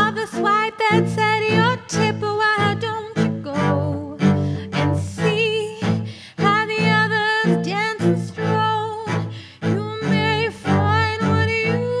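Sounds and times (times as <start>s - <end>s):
woman singing with vibrato: 0.0s - 12.0s.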